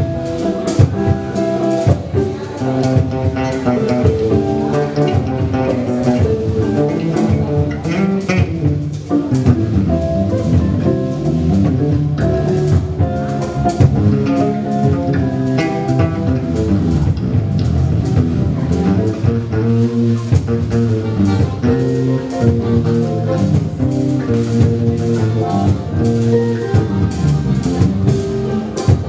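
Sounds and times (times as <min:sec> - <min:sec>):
drum kit beat: 0:00.0 - 0:29.0
electric bass: 0:00.0 - 0:29.0
electric guitar: 0:00.0 - 0:29.0.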